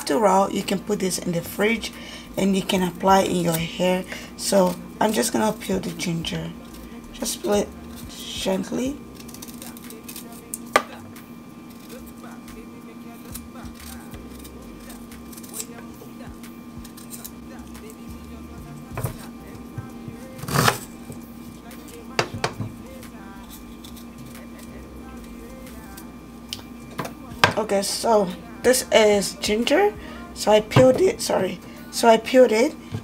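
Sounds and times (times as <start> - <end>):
low hum: 0.0 - 33.0
knife scraping on wooden board: 19.0 - 21.2.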